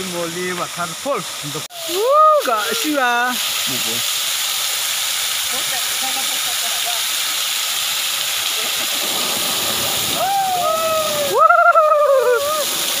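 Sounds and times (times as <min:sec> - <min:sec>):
waterfall rushing: 0:00.0 - 0:13.0.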